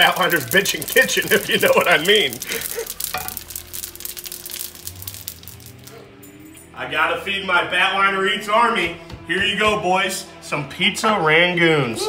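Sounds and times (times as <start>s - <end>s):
oil sizzling and crackling: 0.0s - 6.4s.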